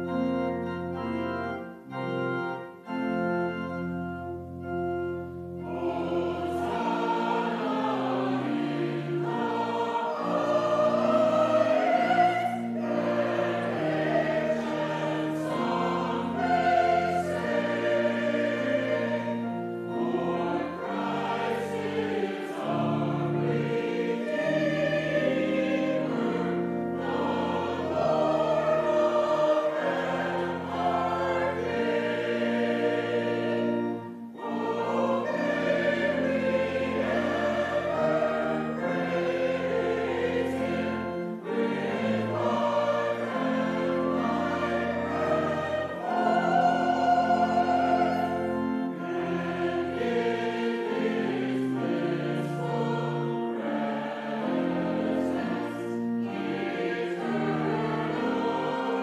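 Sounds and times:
choir singing in harmony: 0:00.0 - 0:59.0.

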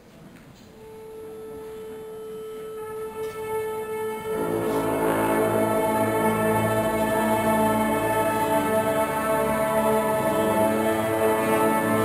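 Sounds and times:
orchestra playing sustained notes: 0:00.8 - 0:12.0.

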